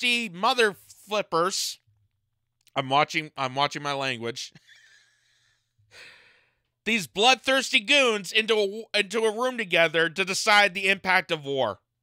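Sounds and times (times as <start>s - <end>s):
man speaking: 0.0s - 1.8s, 2.7s - 4.6s, 6.8s - 11.8s.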